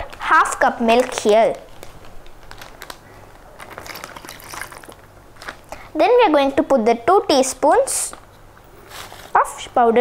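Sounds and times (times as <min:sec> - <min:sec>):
plastic bag crinkling: 0:00.8 - 0:05.9
milk pouring: 0:03.6 - 0:05.1.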